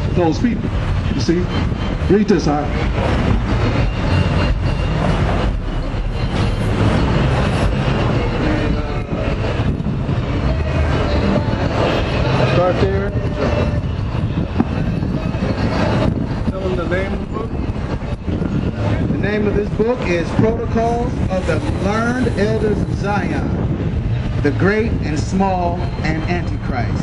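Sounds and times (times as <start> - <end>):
faint voices: 0.0 - 27.0
street traffic rumble: 0.0 - 27.0.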